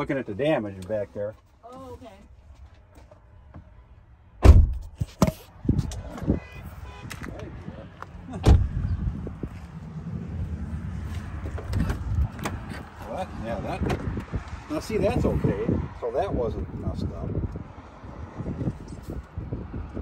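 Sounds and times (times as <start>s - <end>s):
thumps on car doors and panels: 4.4s - 5.4s.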